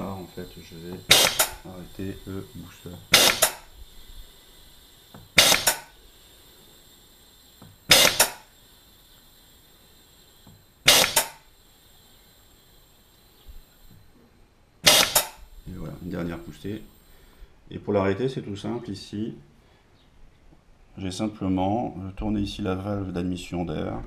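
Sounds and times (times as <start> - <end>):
gas booster air bursts: 0.0 - 14.1, 14.8 - 17.4.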